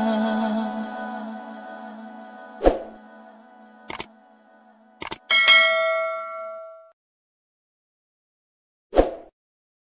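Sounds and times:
short clicks: 3.9 - 4.1, 5.0 - 5.3
bright bell-like ding: 5.3 - 7.0.

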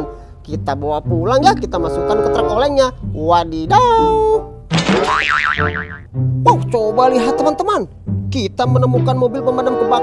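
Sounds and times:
cartoon boing sound effect: 4.8 - 6.1.

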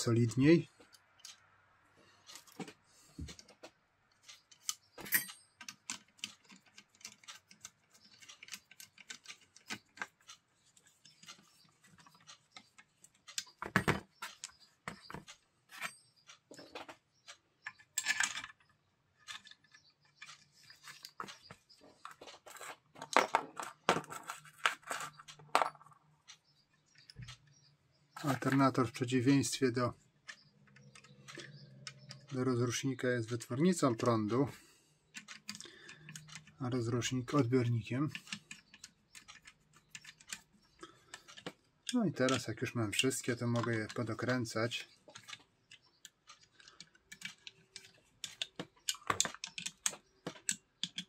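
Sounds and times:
metal parts clicking and clinking: 4.2 - 10.4, 17.6 - 21.3, 22.0 - 26.0, 46.3 - 51.0.

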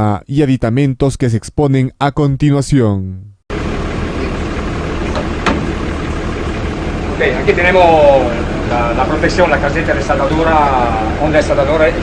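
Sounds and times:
engine idling: 3.5 - 12.0.

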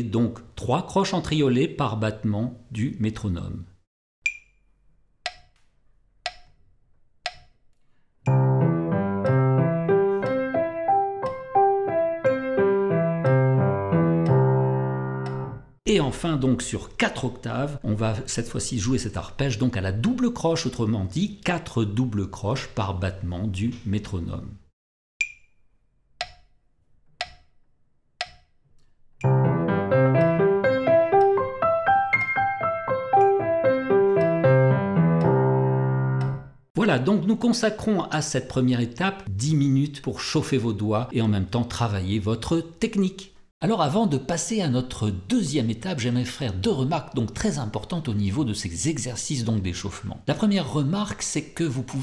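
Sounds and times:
metronome clicking: 4.2 - 6.6, 7.2 - 8.4, 14.2 - 14.5, 15.2 - 15.5, 25.2 - 26.6, 27.2 - 27.6, 28.2 - 35.4, 36.2 - 36.4
piano arpeggios: 8.3 - 15.8, 29.2 - 36.6.

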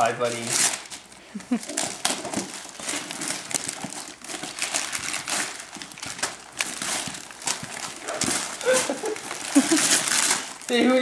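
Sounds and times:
wrapping paper crinkling: 0.0 - 11.0
person laughing: 1.3 - 1.9, 8.6 - 10.2.

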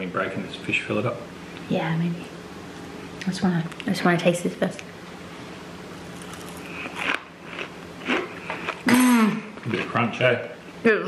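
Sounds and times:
steady low hum: 0.0 - 11.0
chewing crunchy fried food: 6.0 - 10.2.

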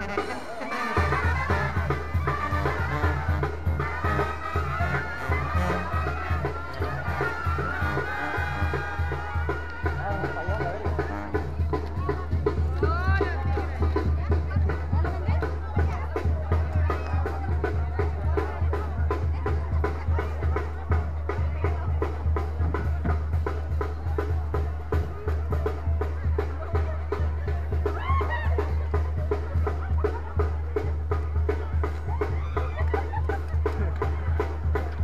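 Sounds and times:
live band music: 0.0 - 17.5
crowd chatter: 0.0 - 35.0
steady drum beat: 0.0 - 35.0.

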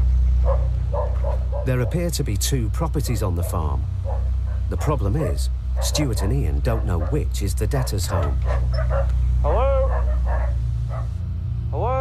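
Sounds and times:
steady low hum: 0.0 - 12.0
dog barking: 0.4 - 2.1, 3.2 - 4.9, 5.8 - 11.2.

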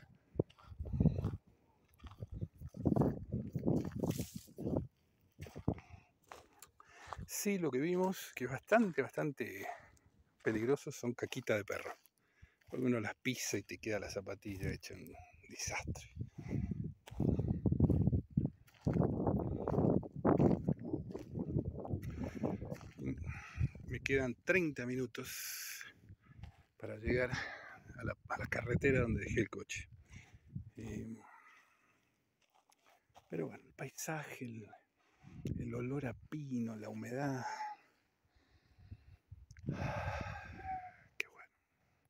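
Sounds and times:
footsteps on dirt path: 0.0 - 24.1, 25.3 - 27.9, 30.0 - 34.4.

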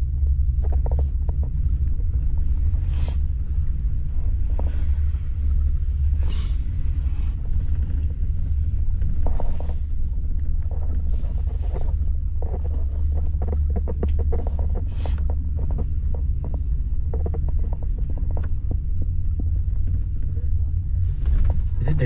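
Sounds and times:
creaks and knocks: 0.0 - 2.8, 7.5 - 22.0
gondola cabin low rumble: 0.0 - 22.0.

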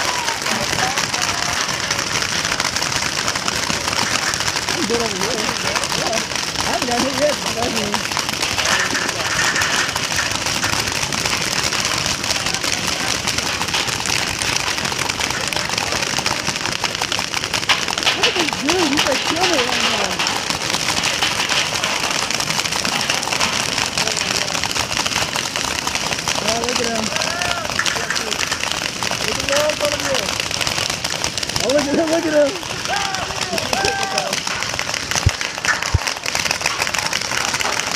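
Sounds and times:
voices shouting: 0.0 - 2.1, 26.4 - 28.4, 31.6 - 34.6
paintball markers firing: 0.0 - 37.9.

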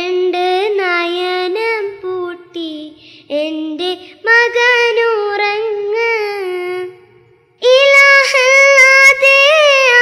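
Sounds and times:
child singing a high note: 0.0 - 10.0.

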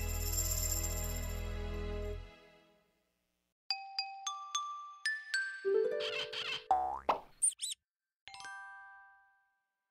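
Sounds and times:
high-pitched squeaks: 6.0 - 6.7
cartoon plop: 6.7 - 7.3.

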